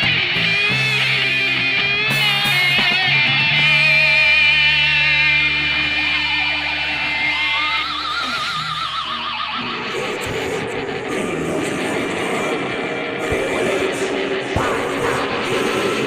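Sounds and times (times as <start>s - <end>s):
drums: 0.0s - 9.0s, 14.2s - 16.0s
held bass: 0.0s - 9.8s
distorted electric guitar chord: 0.0s - 16.0s
lead guitar with fast vibrato: 0.0s - 16.0s.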